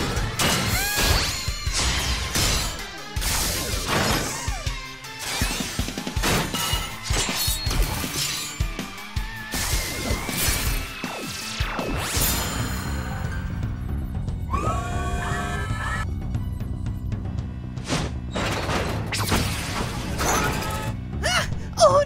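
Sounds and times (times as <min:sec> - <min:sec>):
crashing and shattering effects: 0:00.0 - 0:13.2, 0:17.8 - 0:21.0
action music: 0:00.0 - 0:22.0.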